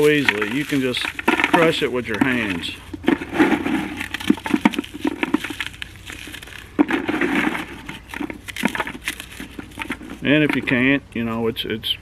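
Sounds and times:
charcoal crunching by hand: 0.0s - 10.8s.

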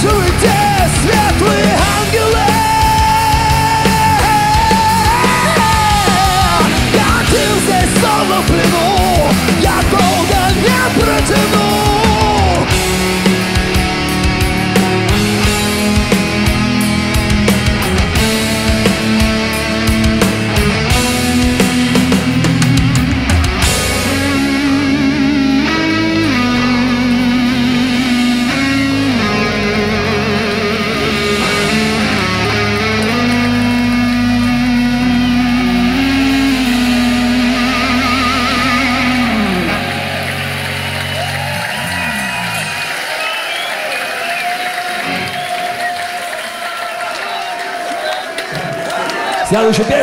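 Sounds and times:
bass guitar: 0.0s - 46.0s
electric guitars with vibrato: 0.0s - 46.4s
drums: 0.0s - 50.0s.

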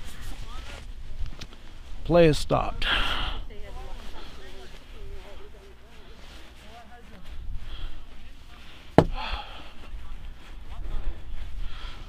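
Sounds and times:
sharp knock: 9.0s - 9.2s.

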